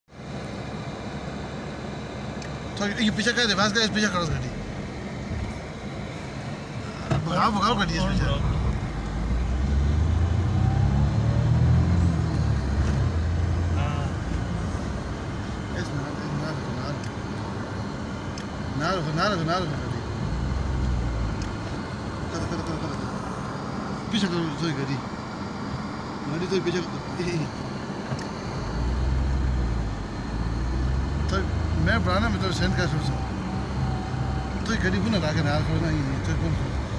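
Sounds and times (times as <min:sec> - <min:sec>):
car engine accelerating hard: 0:07.2 - 0:24.8, 0:26.0 - 0:36.9.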